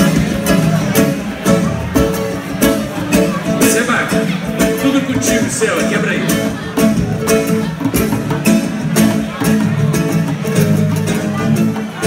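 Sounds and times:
acoustic guitar strumming: 0.0 - 12.0
cavaquinho strumming chords: 0.0 - 12.0
large hand drum: 0.0 - 12.0.

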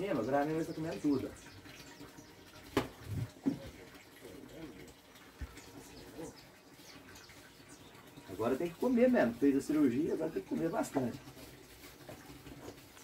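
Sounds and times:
dry feed pouring: 8.2 - 13.0.

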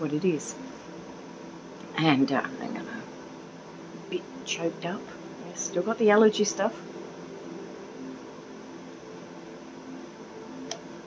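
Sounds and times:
faint sustained tones: 0.0 - 11.0
room hum: 0.0 - 11.0.

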